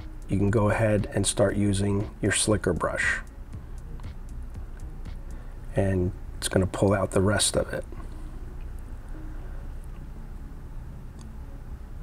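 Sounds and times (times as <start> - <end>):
low machine hum: 0.0 - 12.0.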